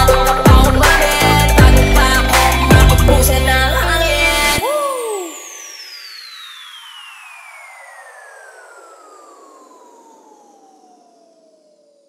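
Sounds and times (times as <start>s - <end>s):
electronic falling sweep: 0.0s - 12.0s.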